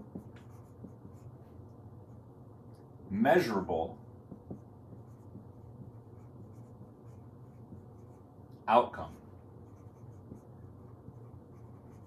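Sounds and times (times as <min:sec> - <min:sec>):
marker writing on whiteboard: 0:00.0 - 0:02.3, 0:04.0 - 0:12.0
low room hum: 0:00.0 - 0:12.0.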